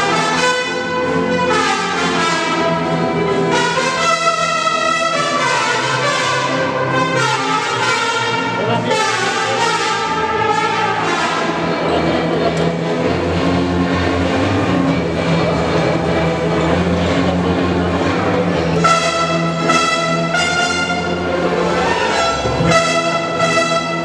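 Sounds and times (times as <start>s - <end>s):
brass band playing held notes: 0.0s - 24.0s.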